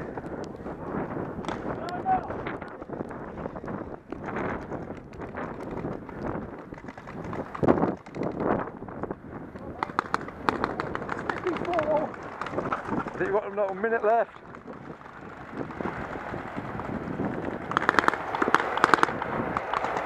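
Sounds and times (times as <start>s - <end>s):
wind and movement rustle: 0.0s - 20.0s
paintball markers firing: 1.4s - 2.0s, 9.6s - 12.9s, 17.6s - 20.0s.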